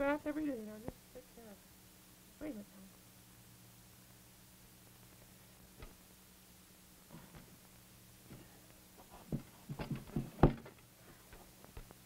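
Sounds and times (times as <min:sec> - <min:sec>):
low steady hum: 0:00.0 - 0:12.0
puppets knocking and thumping: 0:09.1 - 0:10.8.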